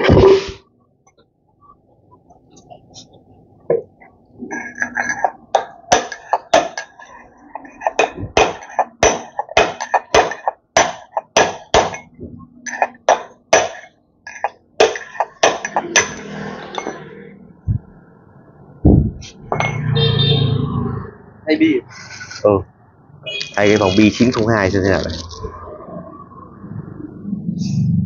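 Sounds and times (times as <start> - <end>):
metal tools tapping and clinking: 3.7 - 17.1, 19.5 - 19.9.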